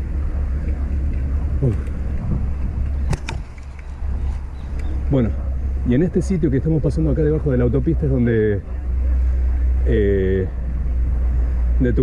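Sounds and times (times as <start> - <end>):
wind and road noise: 0.0 - 12.0
sharp clicks: 3.0 - 4.0.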